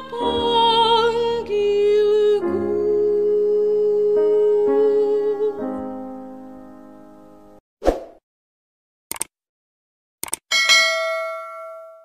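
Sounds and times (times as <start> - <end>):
double mouse click: 9.1 - 9.3, 10.2 - 10.4
notification bell ding: 10.5 - 12.0.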